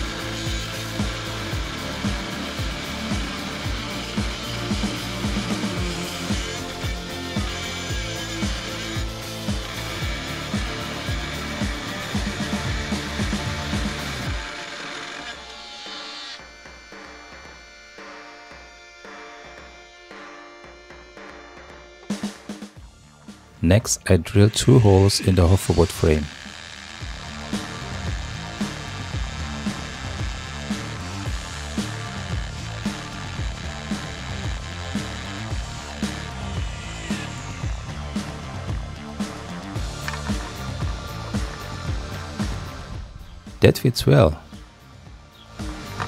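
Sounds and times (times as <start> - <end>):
power tool cutting metal: 0.0 - 22.6, 24.2 - 43.0, 45.4 - 46.0
background music: 0.0 - 46.0.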